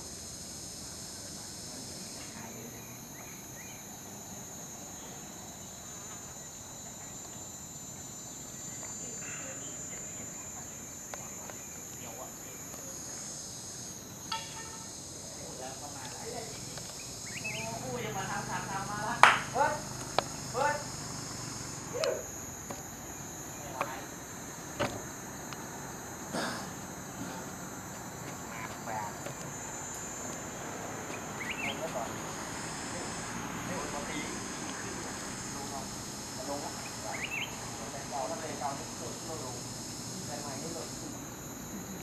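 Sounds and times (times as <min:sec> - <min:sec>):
insects droning: 0:00.0 - 0:42.0
faint distant voices: 0:00.1 - 0:42.0.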